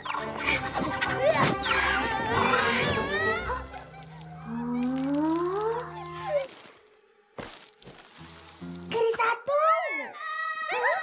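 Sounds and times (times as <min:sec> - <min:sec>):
background music: 0:00.0 - 0:10.9
child shouting: 0:09.3 - 0:11.0.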